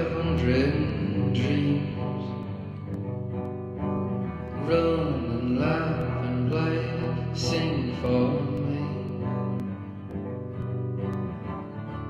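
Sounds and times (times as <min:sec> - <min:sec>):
man singing long held notes: 0:00.0 - 0:02.8, 0:04.6 - 0:09.6
electric guitar holding chord: 0:00.0 - 0:12.0.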